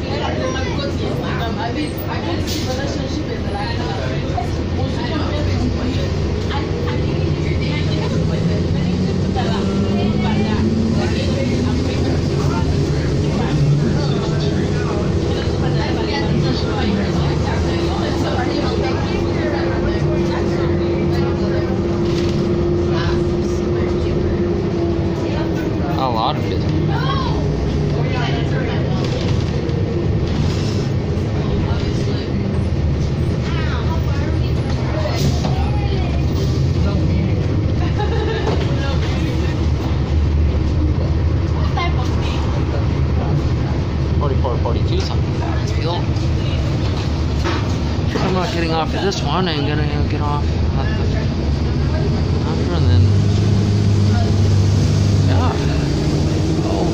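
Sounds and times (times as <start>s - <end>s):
bus engine rumble with whine: 0.0s - 56.9s.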